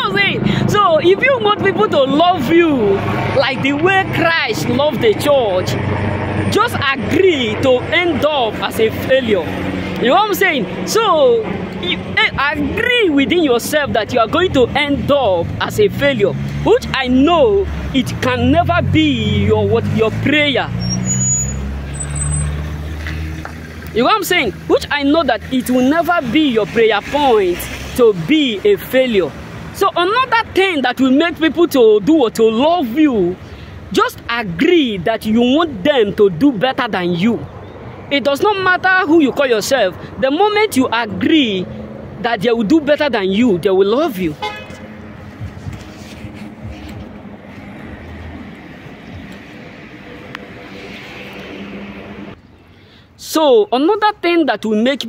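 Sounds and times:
vehicle engine humming: 0.0 - 53.2
high-pitched squeaks: 20.8 - 22.6.

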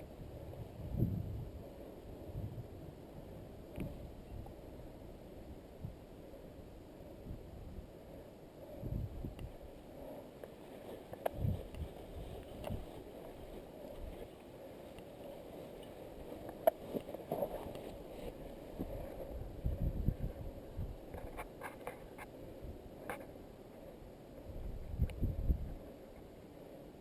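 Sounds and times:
wind on microphone: 0.0 - 8.0, 8.6 - 9.8, 11.1 - 14.4, 16.2 - 23.2, 24.4 - 26.0
clicks and rustles: 21.1 - 22.4.

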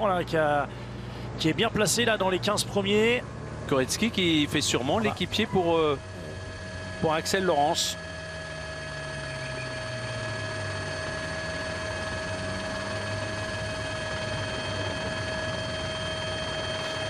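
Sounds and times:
low engine drone: 0.0 - 17.0
high electrical whine: 1.5 - 17.0.

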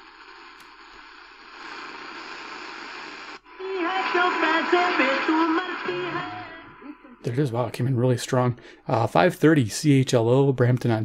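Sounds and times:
radio static hissing: 0.0 - 7.8
radio program audio: 0.0 - 11.0.

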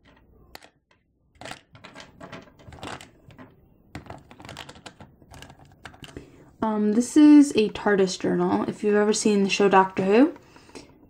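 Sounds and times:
clay charms clicking: 0.0 - 0.8, 1.4 - 6.3
plastic box rattling: 0.0 - 8.2.

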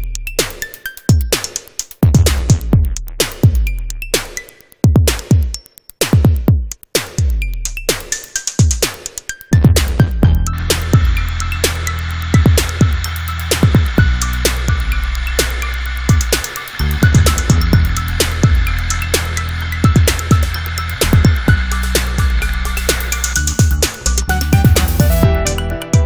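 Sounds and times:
repeating drum beat: 0.2 - 26.0
deep bass: 2.1 - 4.0, 9.6 - 26.0
electronic dance music: 7.9 - 26.0.

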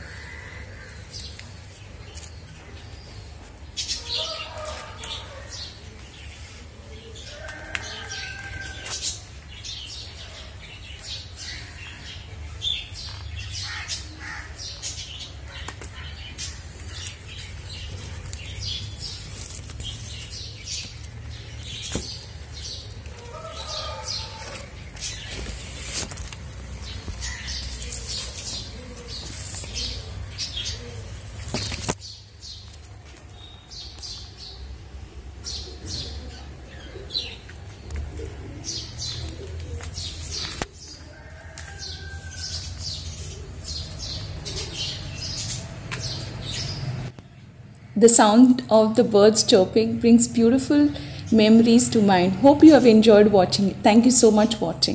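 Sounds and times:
small birds chirping: 0.0 - 54.9.

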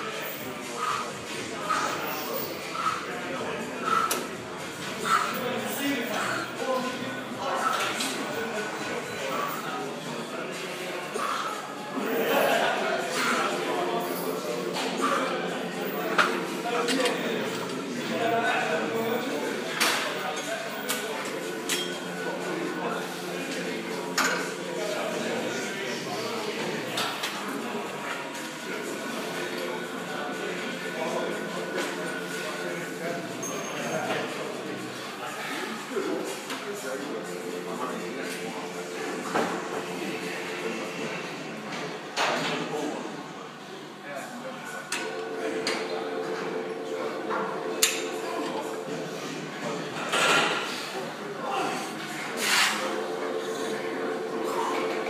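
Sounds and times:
gym room noise: 0.0 - 23.5
indistinct voices: 0.0 - 55.0.

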